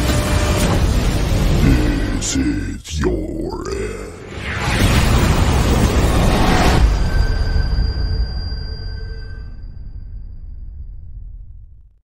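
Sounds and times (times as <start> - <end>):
low rumble: 0.8 - 12.0
deep growling voice: 1.4 - 4.4.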